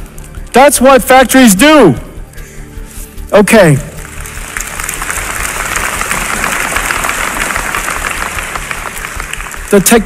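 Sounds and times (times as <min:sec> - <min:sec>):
audience applause: 0:04.0 - 0:10.0.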